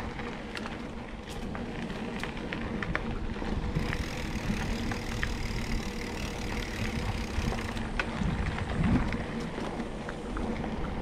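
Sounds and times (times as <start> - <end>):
bike clicks and rattles: 0.0 - 11.0
bike tyres rumbling on dirt: 0.0 - 11.0
wind on camera: 0.0 - 11.0.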